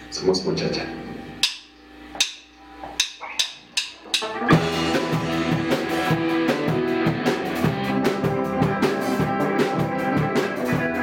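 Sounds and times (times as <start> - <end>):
drumsticks clicked together: 3.0 - 4.3.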